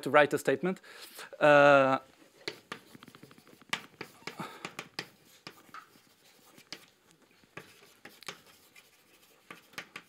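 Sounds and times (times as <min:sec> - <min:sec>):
chalk tapping and scratching on blackboard: 0:02.4 - 0:10.0.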